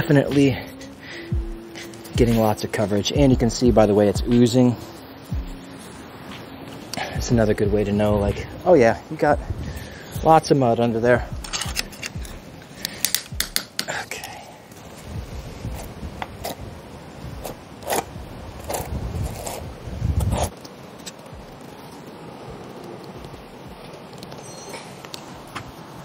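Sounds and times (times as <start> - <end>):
sharp clicks: 11.4 - 14.3
trowel scraping mortar: 17.4 - 21.2.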